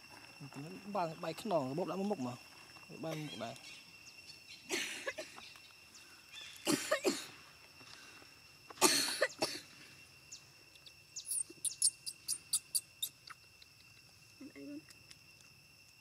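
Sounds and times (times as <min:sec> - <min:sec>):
high-pitched insect drone: 0:00.0 - 0:16.0
person coughing: 0:06.7 - 0:07.4, 0:08.8 - 0:09.6.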